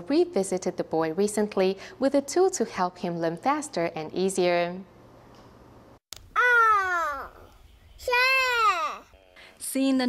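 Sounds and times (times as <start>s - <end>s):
child's voice drawing out a syllable: 6.4s - 9.2s.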